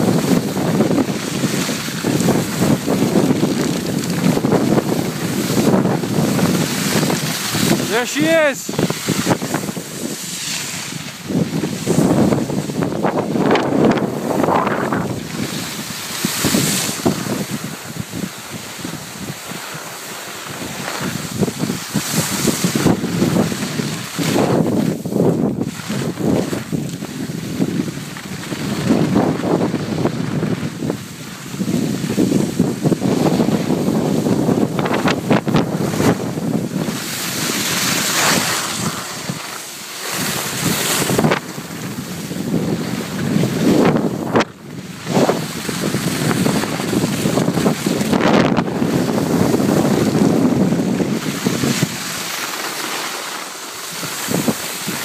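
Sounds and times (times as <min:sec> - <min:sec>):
skis sliding over snow: 0:00.0 - 0:55.0
wind buffeting microphone: 0:00.0 - 0:55.0.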